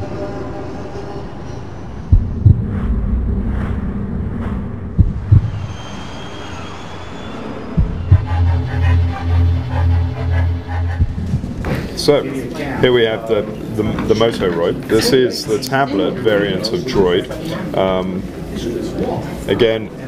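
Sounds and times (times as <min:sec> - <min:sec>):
intro music with bass thumps: 0:02.1 - 0:05.6, 0:07.8 - 0:12.2.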